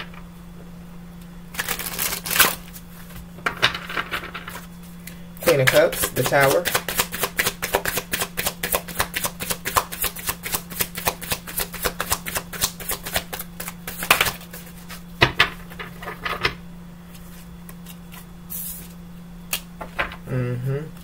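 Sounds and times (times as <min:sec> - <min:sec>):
low steady hum: 0:00.0 - 0:21.0
cards being shuffled: 0:01.6 - 0:03.2, 0:05.4 - 0:15.0, 0:17.1 - 0:19.6.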